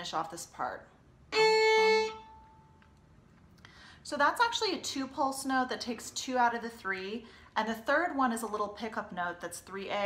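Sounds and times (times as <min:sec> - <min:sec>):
violin note ringing: 0:01.3 - 0:02.7.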